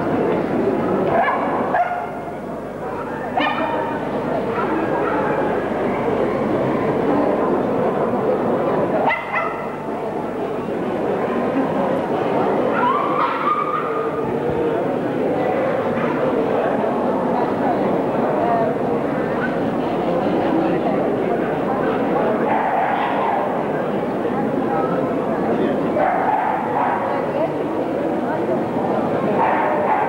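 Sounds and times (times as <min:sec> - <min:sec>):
crowd chatter: 0:00.0 - 0:30.0.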